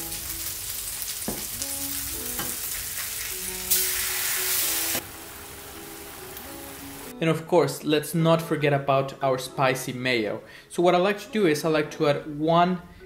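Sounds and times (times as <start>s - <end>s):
patties sizzling in hot oil: 0.0s - 7.1s.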